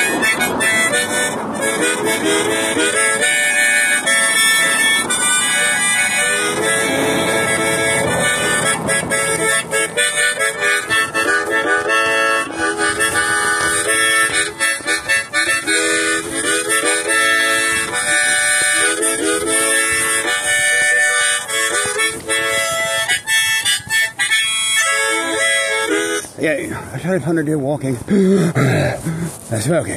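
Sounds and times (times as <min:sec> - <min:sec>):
reed instrument melody: 0:00.0 - 0:26.8.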